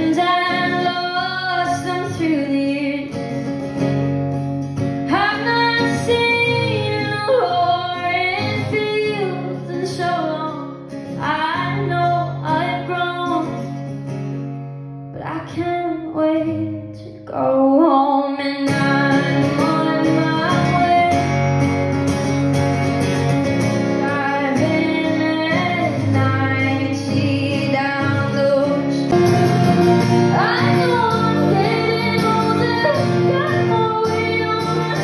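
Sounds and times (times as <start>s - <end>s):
woman singing into microphone: 0.0s - 3.3s, 5.0s - 13.6s, 15.1s - 21.5s, 23.9s - 35.0s
acoustic guitar: 0.0s - 35.0s.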